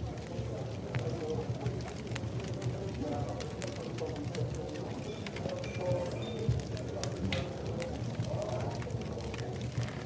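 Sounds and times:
crowd murmur of chatter: 0.0 - 10.0.

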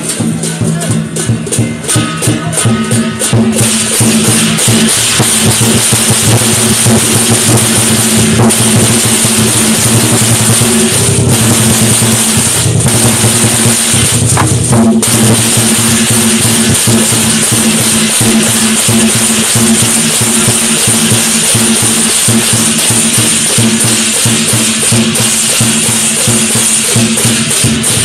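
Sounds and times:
big drum beaten rapidly: 0.0 - 28.0
cymbals crashing: 0.0 - 28.0.

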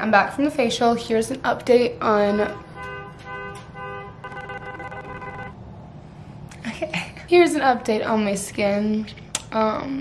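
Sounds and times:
horn-like electronic tone: 3.9 - 5.6.

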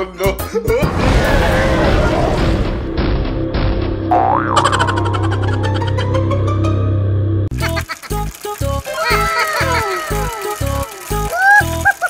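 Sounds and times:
background music: 0.0 - 12.0
cartoon boing sound effect: 4.1 - 5.7.

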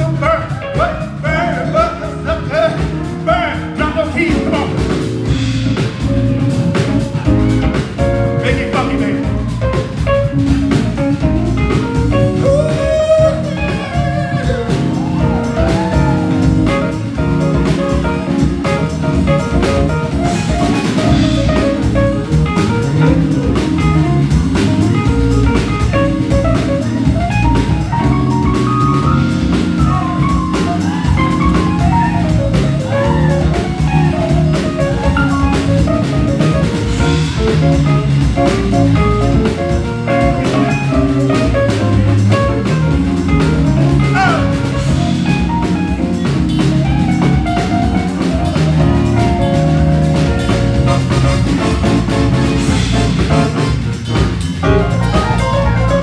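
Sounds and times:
funk band playing instrumental: 0.0 - 56.0.

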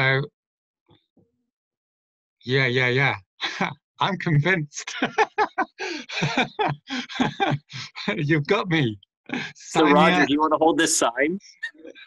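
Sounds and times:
man's voice over video call: 0.0 - 0.3, 2.5 - 12.0.

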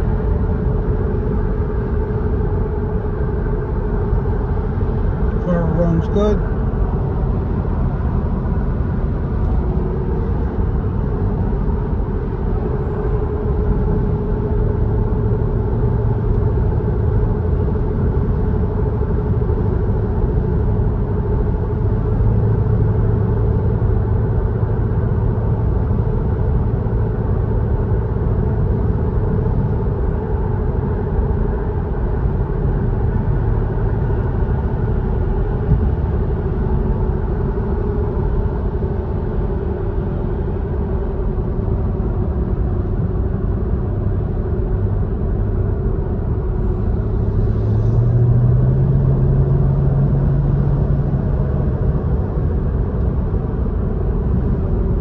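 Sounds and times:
car engine and road noise: 0.0 - 55.0.

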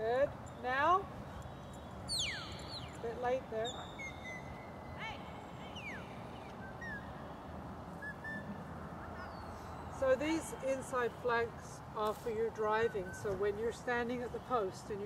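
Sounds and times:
steady background hiss: 0.0 - 15.0.

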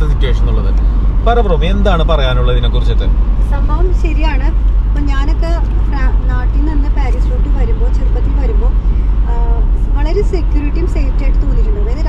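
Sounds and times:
car interior rumble: 0.0 - 12.0.

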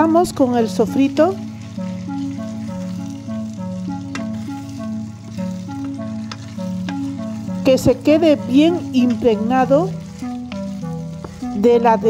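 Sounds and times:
background music of held notes: 0.0 - 12.0
chicken sizzling in a pot: 0.0 - 12.0
wooden spoon stirring in a pot: 0.1 - 12.0.

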